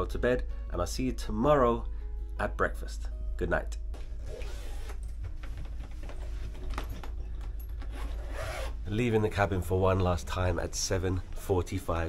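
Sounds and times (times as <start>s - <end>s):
suitcase rustling: 4.0s - 8.8s.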